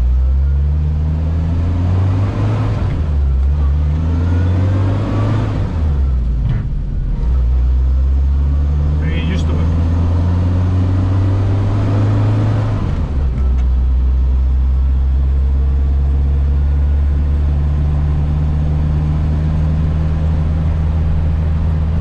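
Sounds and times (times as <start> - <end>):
car engine running under load: 0.0 - 22.0.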